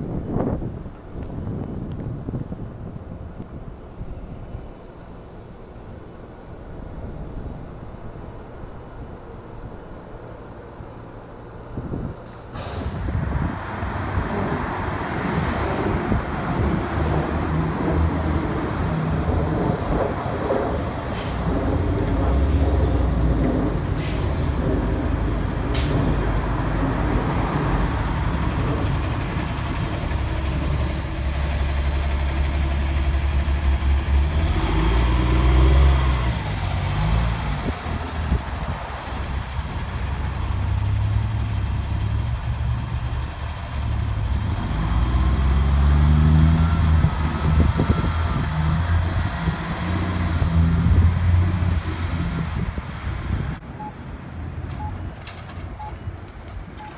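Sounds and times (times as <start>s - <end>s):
general traffic: 0.0s - 56.9s
bus and truck driving past: 2.6s - 56.9s.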